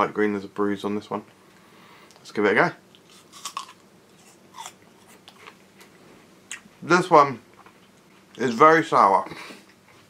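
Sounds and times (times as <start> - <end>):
apple being chewed: 2.9 - 6.7.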